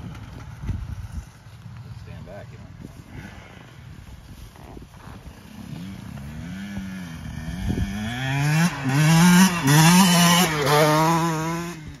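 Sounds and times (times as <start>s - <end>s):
dirt bike engine revving: 4.6s - 12.0s.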